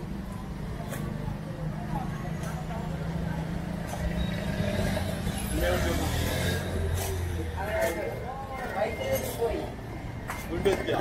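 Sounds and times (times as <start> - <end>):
people talking indistinctly: 1.2 - 11.0.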